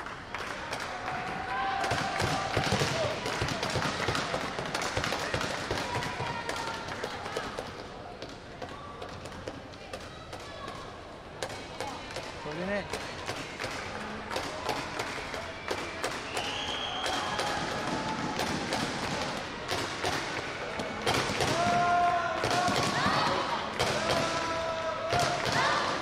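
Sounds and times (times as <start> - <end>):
indistinct voices echoing: 10.0 - 26.0.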